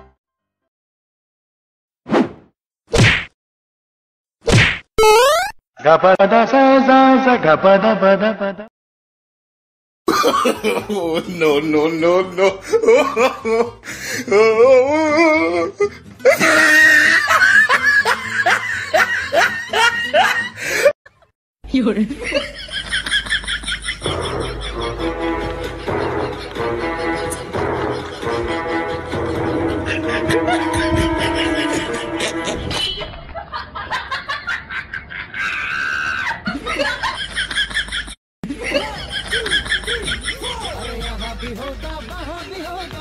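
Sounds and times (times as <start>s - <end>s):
person laughing: 16.2s - 20.9s, 25.7s - 32.8s, 35.1s - 41.7s.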